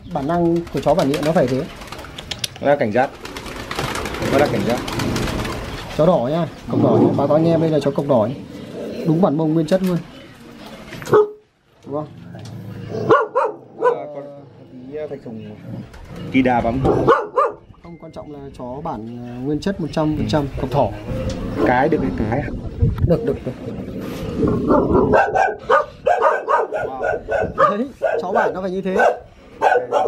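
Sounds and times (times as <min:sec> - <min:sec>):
puppy barking: 0:11.1 - 0:11.4, 0:13.0 - 0:14.2, 0:16.8 - 0:17.7, 0:24.7 - 0:30.0.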